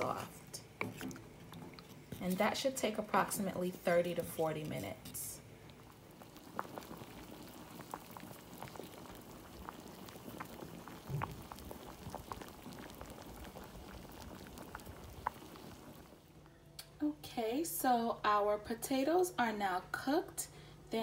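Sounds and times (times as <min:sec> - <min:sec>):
water boiling in a pot: 0:00.0 - 0:16.3.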